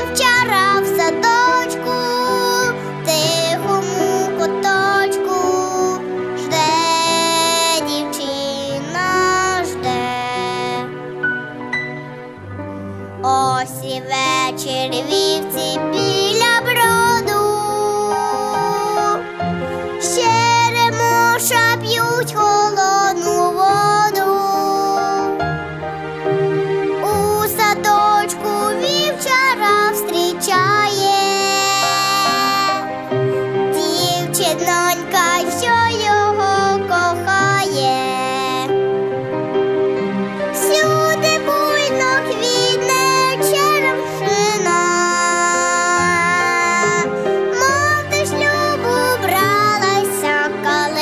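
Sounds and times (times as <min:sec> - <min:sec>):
girl singing into a microphone: 0:00.0 - 0:10.9, 0:13.2 - 0:19.2, 0:20.0 - 0:25.4, 0:27.0 - 0:33.0, 0:33.7 - 0:38.7, 0:40.6 - 0:51.0
instrumental accompaniment: 0:00.0 - 0:51.0.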